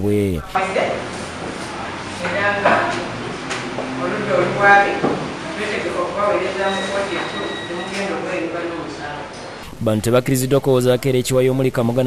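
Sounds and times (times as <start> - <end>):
voices speaking: 0.0 - 9.7.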